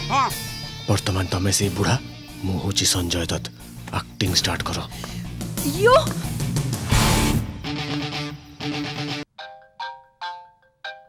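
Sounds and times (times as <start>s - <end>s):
film music: 0.0s - 10.6s.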